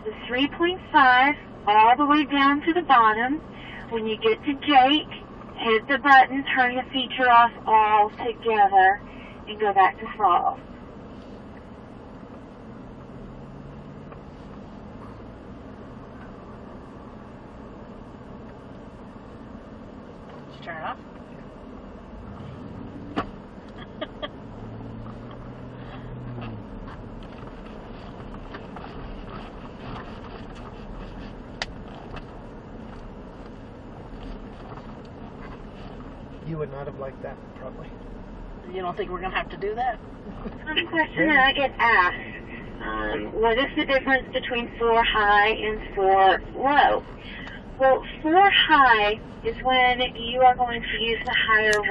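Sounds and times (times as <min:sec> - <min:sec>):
faint hum: 0:00.0 - 0:51.9
truck engine and tyre noise: 0:00.0 - 0:51.9.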